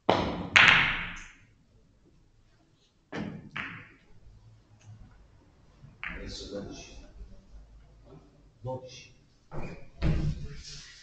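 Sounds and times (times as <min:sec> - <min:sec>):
billiard balls colliding: 0:00.0 - 0:01.6, 0:03.1 - 0:04.2, 0:05.9 - 0:06.8.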